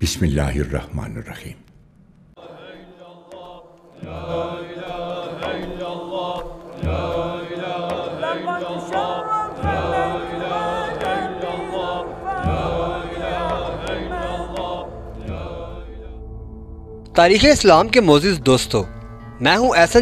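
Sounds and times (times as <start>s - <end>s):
voices chanting in unison: 2.4s - 17.5s
deep low hit: 9.6s - 19.4s.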